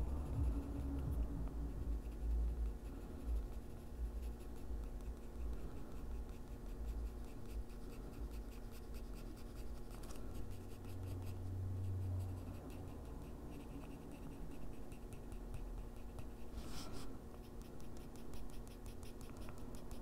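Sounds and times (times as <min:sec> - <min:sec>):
pencil scratching on paper: 0:00.0 - 0:20.0.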